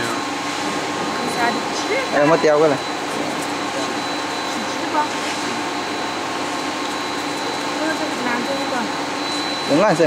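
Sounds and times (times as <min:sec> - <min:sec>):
heat press machine whirring: 0:00.0 - 0:10.0
high steady whine: 0:00.0 - 0:10.0.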